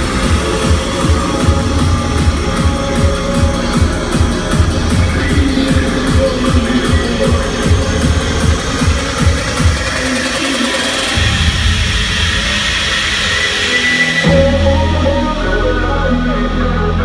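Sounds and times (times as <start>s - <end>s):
rising noise sweep: 0.0s - 15.8s
dubstep over club sound system: 0.0s - 17.0s
held bass note: 11.1s - 17.0s.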